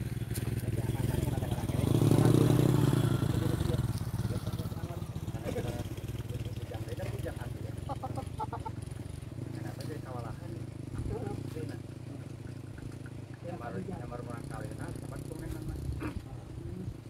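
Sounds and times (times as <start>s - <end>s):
vehicle engine running: 0.0s - 17.0s.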